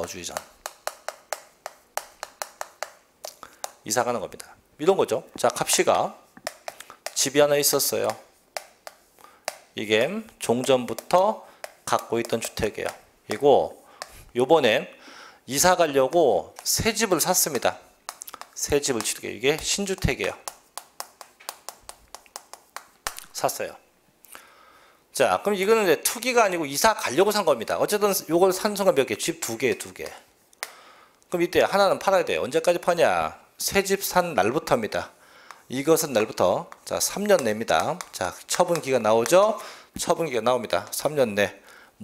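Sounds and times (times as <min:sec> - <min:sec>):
chalk tapping on chalkboard: 0:00.0 - 0:04.5, 0:05.4 - 0:14.4, 0:15.6 - 0:23.6, 0:28.8 - 0:30.8, 0:35.5 - 0:40.2
chalk scratching on a blackboard: 0:06.4 - 0:09.7, 0:16.5 - 0:23.0.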